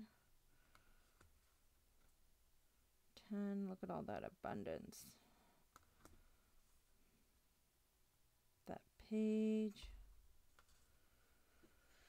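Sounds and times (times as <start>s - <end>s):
faint clicks of cards handled: 9.7s - 10.9s.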